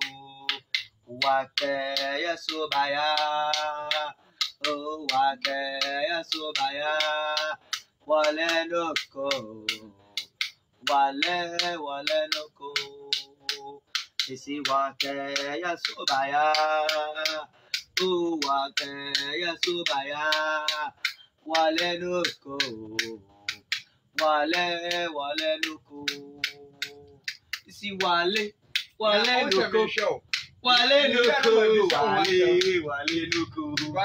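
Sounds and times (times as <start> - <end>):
finger snaps: 0.0 - 34.0
hand clicks keeping time: 0.0 - 34.0
man singing a chant: 0.0 - 34.0.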